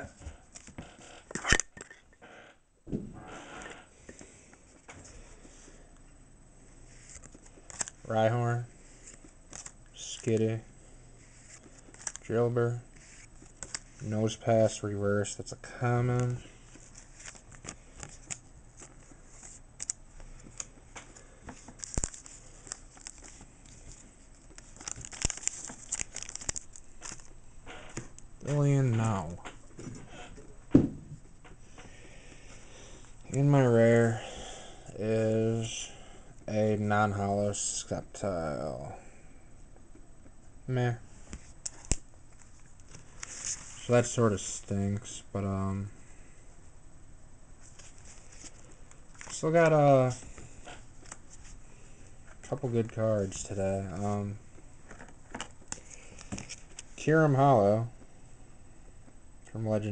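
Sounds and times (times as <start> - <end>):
cards sliding against each other: 6.9 - 8.0, 11.2 - 12.3
card rustle: 6.9 - 10.6, 11.2 - 14.8, 16.0 - 30.3, 41.2 - 45.1, 47.6 - 57.1
crinkling plastic sleeve: 21.6 - 27.3.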